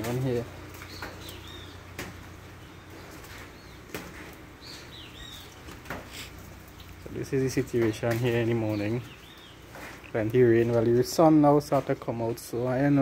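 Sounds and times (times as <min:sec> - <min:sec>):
birds chirping faintly: 0:00.0 - 0:13.0.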